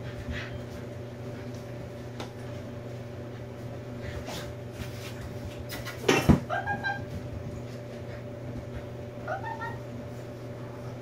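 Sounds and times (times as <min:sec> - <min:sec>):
puppy whining: 0:09.2 - 0:10.0.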